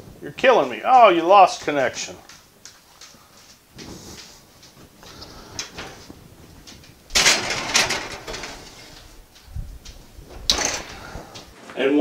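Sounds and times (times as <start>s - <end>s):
rustling and clattering handling: 2.4s - 11.8s.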